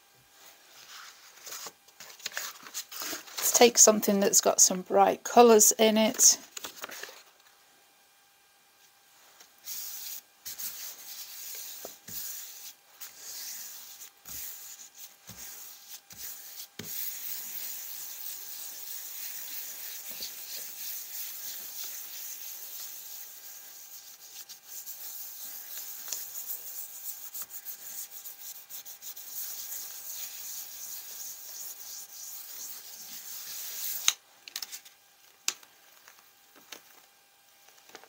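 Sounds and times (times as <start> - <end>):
palms rubbing on paper: 9.6 - 34.1.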